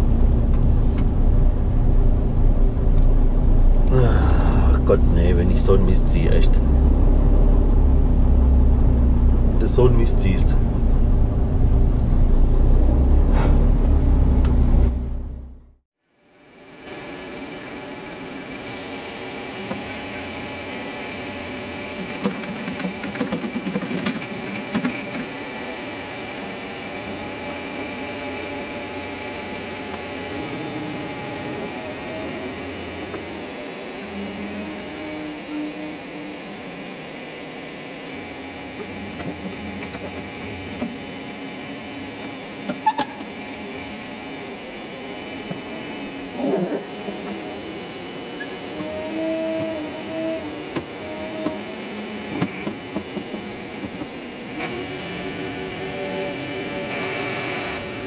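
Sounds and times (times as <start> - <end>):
diesel engine running: 0.0 - 15.8.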